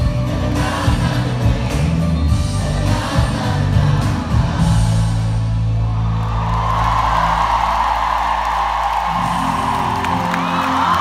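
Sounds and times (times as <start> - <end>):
live pop music over sound system: 0.0 - 11.0
large crowd cheering: 5.6 - 11.0.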